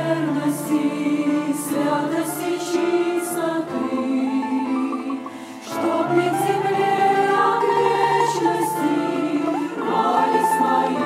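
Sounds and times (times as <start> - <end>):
women's choir singing a hymn: 0.0 - 11.0.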